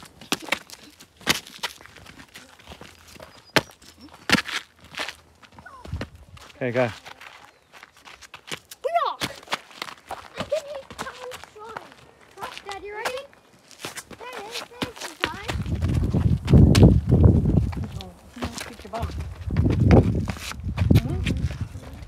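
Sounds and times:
footsteps on rocky dirt trail: 0.0s - 22.0s
voices calling: 2.1s - 4.4s, 8.8s - 15.6s.

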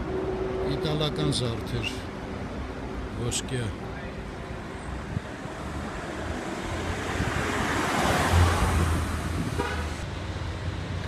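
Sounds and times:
car passing: 0.0s - 11.0s.

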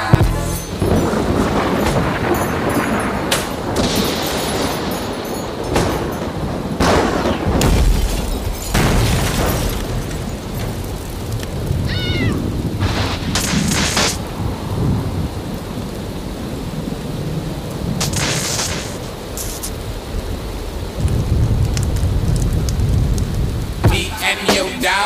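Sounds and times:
bright thunder crashes: 0.0s - 15.7s, 17.8s - 20.4s
low thunder rumble: 0.0s - 24.4s
heavy rain: 0.0s - 25.0s.

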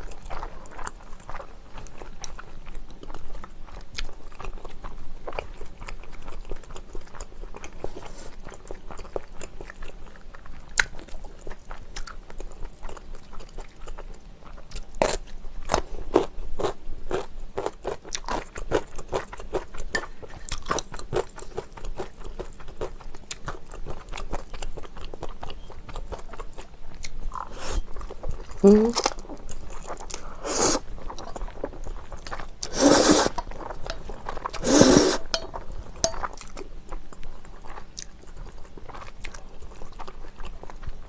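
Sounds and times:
wet chewing of noodles: 0.0s - 41.0s.

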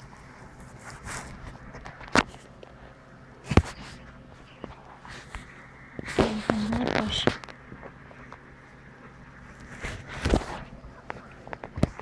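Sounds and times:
camera rustling against fur: 0.0s - 8.3s, 9.5s - 12.0s.

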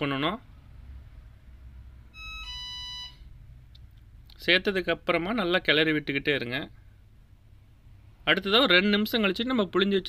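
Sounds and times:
electronic two-note chime: 2.2s - 3.2s.

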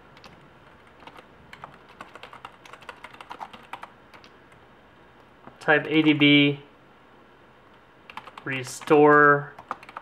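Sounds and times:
keyboard typing: 0.2s - 4.6s, 8.1s - 10.0s.

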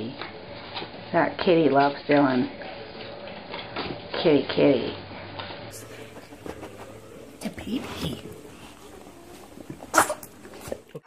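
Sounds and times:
dog sniffing: 5.7s - 11.0s.

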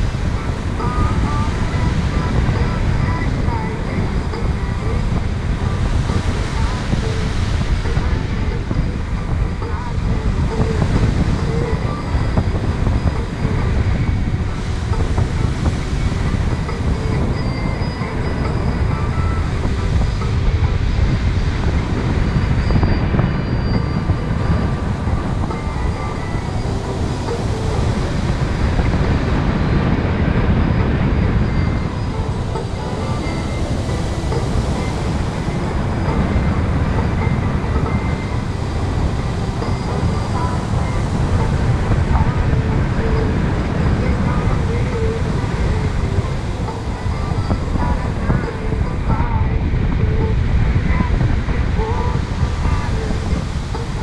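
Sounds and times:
wind rushing over microphone: 0.0s - 54.0s.

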